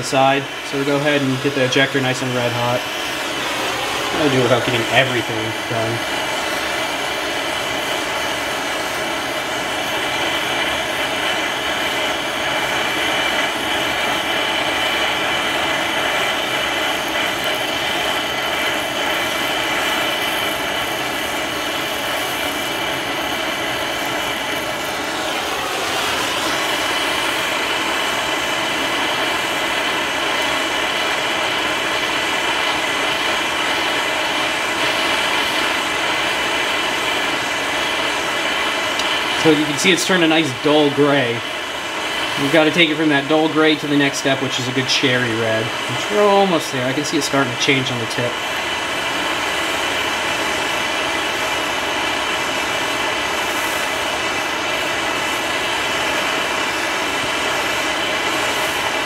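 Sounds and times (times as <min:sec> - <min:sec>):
gas torch hissing: 0:00.0 - 0:59.0.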